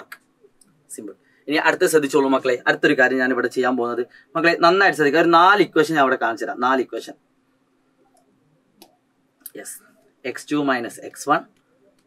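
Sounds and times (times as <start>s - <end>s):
man talking: 0.0s - 0.2s, 0.9s - 7.2s, 9.5s - 11.5s.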